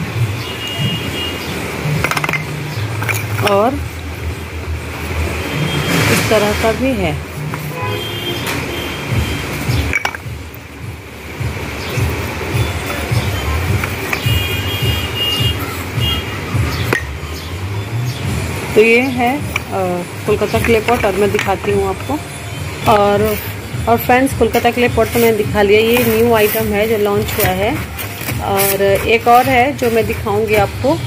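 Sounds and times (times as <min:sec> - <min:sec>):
clay pots clinking: 0:01.8 - 0:03.8, 0:09.6 - 0:10.6, 0:11.5 - 0:17.4, 0:18.4 - 0:31.0
clay cups clinking: 0:01.9 - 0:03.7, 0:09.8 - 0:10.4.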